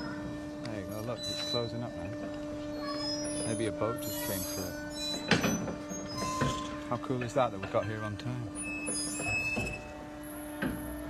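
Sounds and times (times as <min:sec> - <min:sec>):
low electric hum of gate drive: 0:00.0 - 0:11.0.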